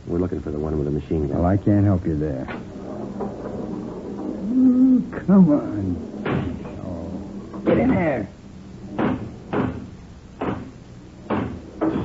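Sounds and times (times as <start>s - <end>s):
pinball ball knocks: 6.2s - 6.8s, 8.9s - 12.0s.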